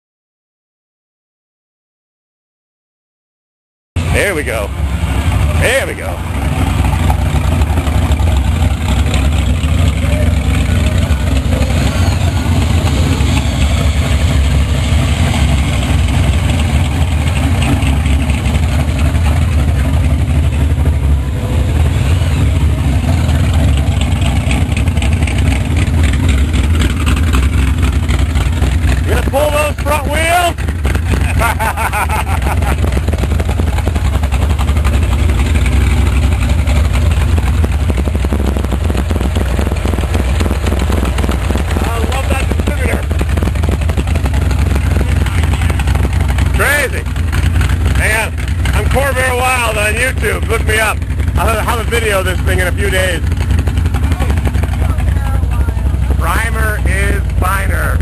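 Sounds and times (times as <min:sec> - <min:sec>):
loud car engine running: 0:04.0 - 0:58.0.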